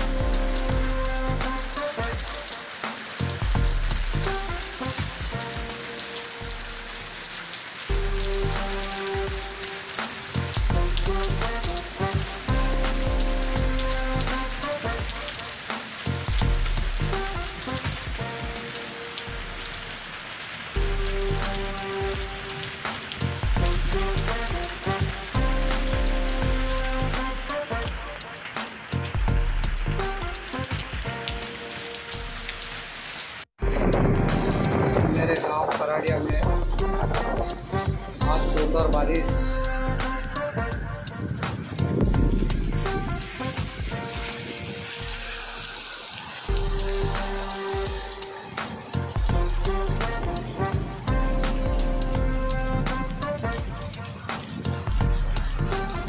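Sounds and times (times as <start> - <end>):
low background music: 0.0 - 20.1, 20.8 - 32.7, 33.6 - 56.0
rain hissing on wet street: 0.0 - 56.0.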